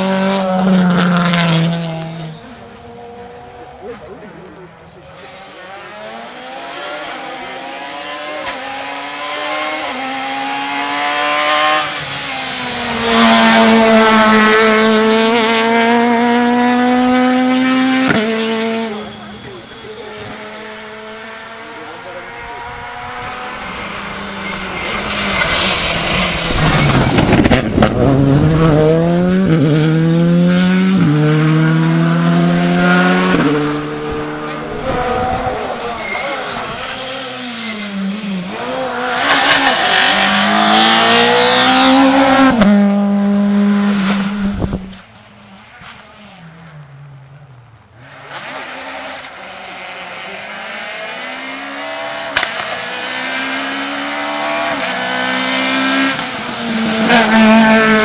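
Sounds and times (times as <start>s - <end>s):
car passing close: 0.0s - 58.0s
rally car engines revving: 0.0s - 58.0s.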